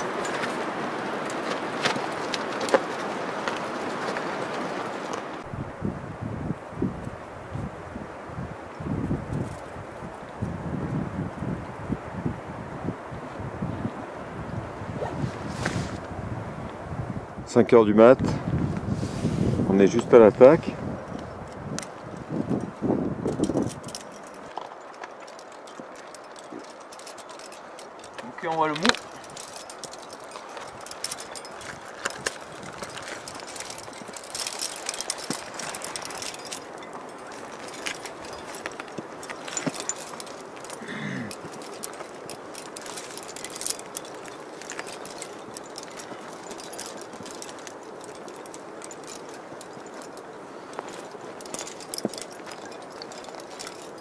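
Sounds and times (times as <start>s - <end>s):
climbing gear clinking: 0.0s - 5.5s, 8.6s - 11.6s, 19.6s - 54.0s.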